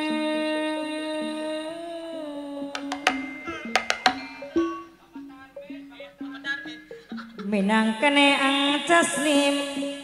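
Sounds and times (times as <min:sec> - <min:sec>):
soft accompanying notes: 0:00.0 - 0:09.4.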